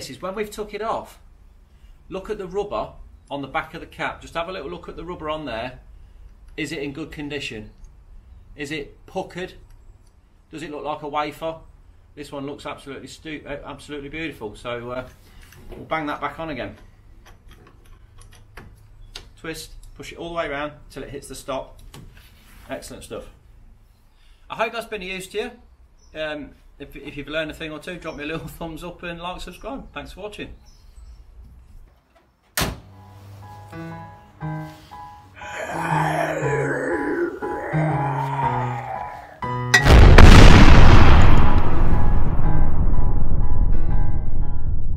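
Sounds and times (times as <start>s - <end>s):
loud rumbling comic blast: 39.8s - 44.9s.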